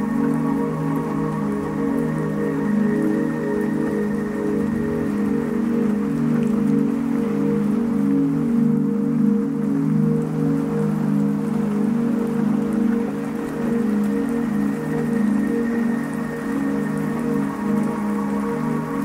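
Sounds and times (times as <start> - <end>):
rain: 0.0 - 19.0.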